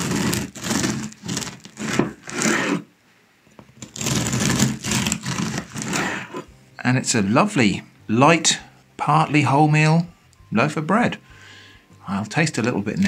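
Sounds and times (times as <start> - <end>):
bread knife sawing through crust: 0.0 - 2.9, 3.8 - 6.5.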